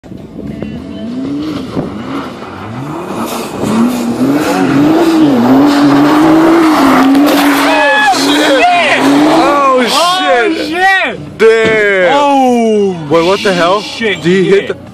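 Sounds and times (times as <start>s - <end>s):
car engine revving: 0.4s - 12.1s.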